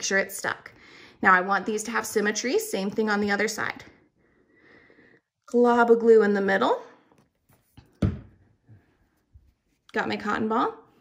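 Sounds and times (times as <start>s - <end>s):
bottle thunk on tabletop: 8.0s - 8.4s.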